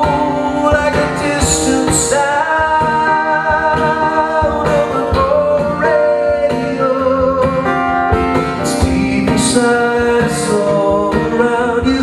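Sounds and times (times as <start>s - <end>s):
man singing: 0.0s - 12.0s
strummed acoustic guitar: 0.0s - 12.0s.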